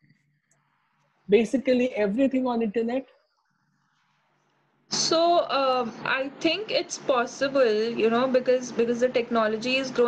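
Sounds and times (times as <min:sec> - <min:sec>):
woman speaking: 0:01.3 - 0:03.1, 0:04.9 - 0:10.0.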